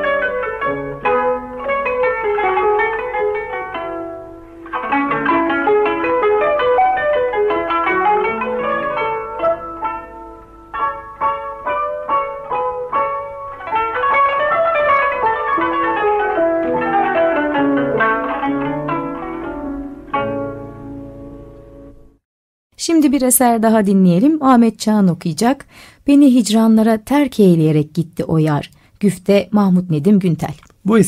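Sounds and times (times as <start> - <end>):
plucked zither: 0.0 - 22.0.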